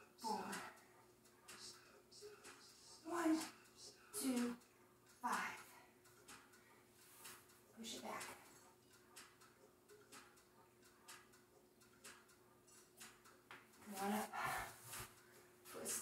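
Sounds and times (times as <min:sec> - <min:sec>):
woman's wordless vocal sounds: 0:00.1 - 0:00.8, 0:13.9 - 0:14.8.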